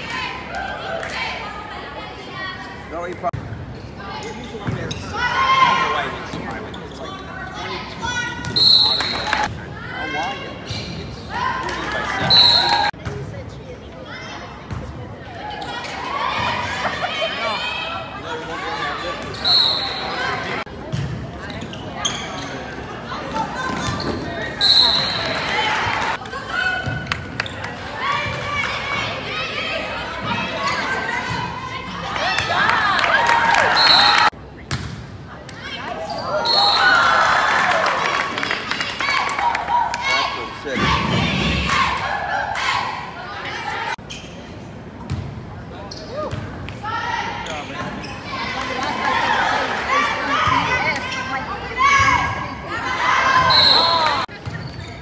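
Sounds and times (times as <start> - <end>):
people talking and calling out: 0.0 - 55.0
spectators chattering: 0.0 - 55.0
referee's whistle blasts: 8.5 - 9.5, 12.2 - 12.9, 19.3 - 20.2, 24.6 - 25.4, 33.8 - 34.3, 53.4 - 54.2.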